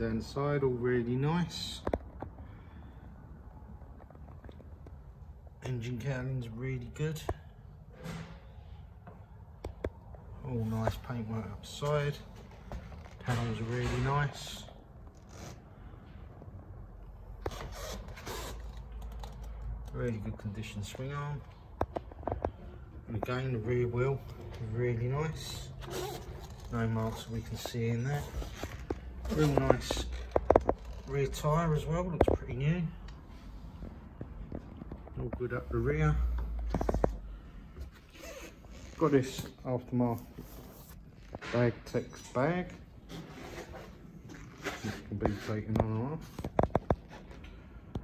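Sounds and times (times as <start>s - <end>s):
camera handling scraping and rustling: 25.8s - 26.8s, 43.0s - 47.6s
soft rustling and brushing: 33.2s - 41.7s.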